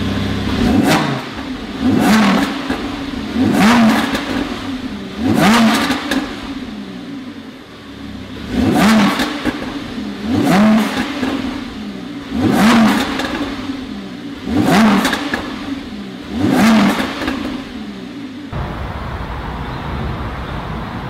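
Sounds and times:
sports car engine revving: 0.0 - 18.7.

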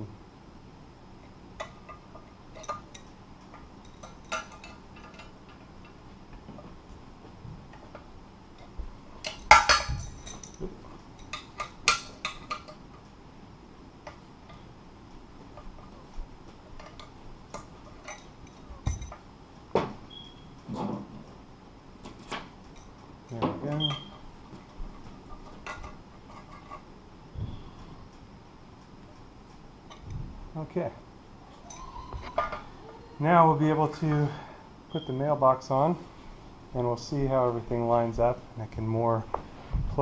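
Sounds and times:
wrench clinking on metal bolts: 1.6 - 6.0, 7.9 - 12.8, 16.8 - 19.2, 25.3 - 26.8.

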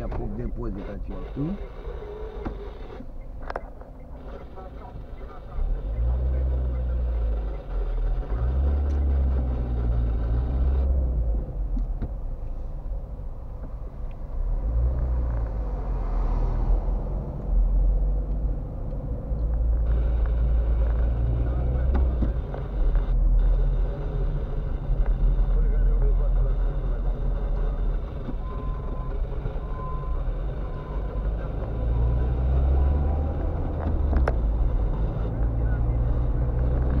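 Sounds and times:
road and engine rumble in car: 0.0 - 37.0.

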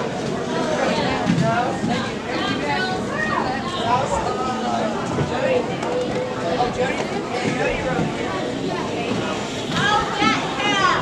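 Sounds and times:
spectators chattering: 0.0 - 11.0.

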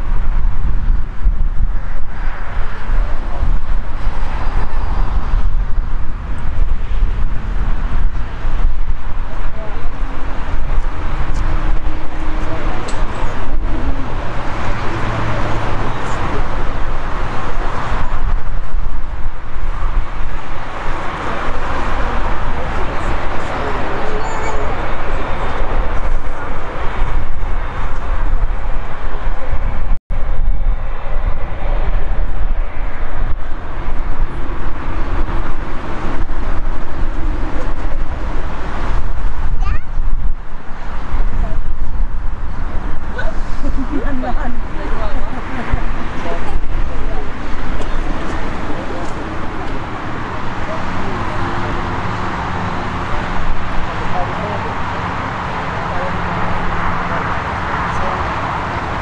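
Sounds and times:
jet engines roaring: 0.0 - 59.0.

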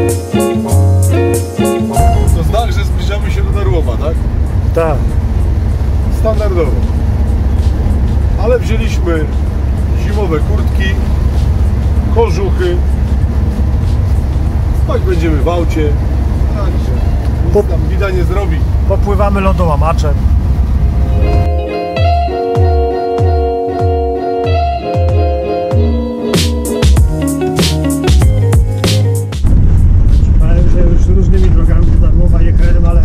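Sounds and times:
guitar music: 0.0 - 17.4, 20.6 - 29.4
engine and road rumble: 0.0 - 22.2, 26.8 - 33.0.

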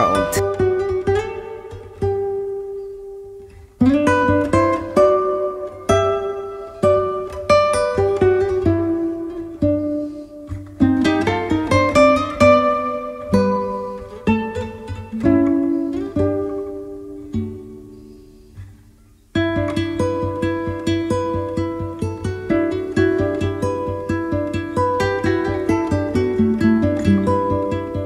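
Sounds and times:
plucked guitar melody: 0.0 - 28.0.

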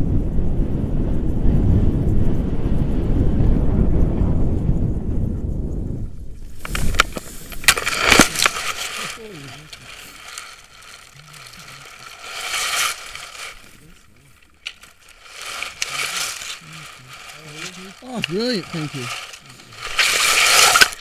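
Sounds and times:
grass and harness rustling: 6.4 - 21.0
knocks and scrape on ground: 6.4 - 21.0
soft low voices: 8.3 - 20.0.

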